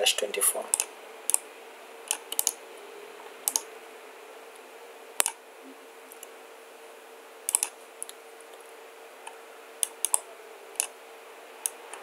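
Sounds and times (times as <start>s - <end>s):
faint steady hum: 0.0s - 12.0s
keyboard and mouse clicks: 2.1s - 2.6s, 3.4s - 3.7s, 7.5s - 8.2s, 9.8s - 10.2s.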